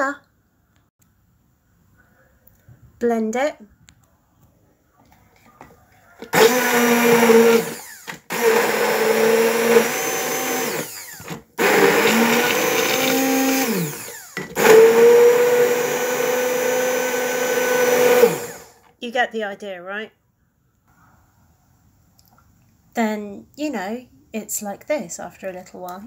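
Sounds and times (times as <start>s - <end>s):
stick blender motor humming: 6.2s - 18.8s.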